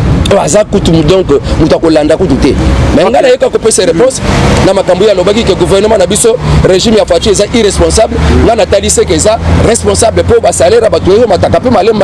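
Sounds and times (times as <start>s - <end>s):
motor vehicle rumble: 0.0s - 12.0s
man talking: 0.2s - 12.0s.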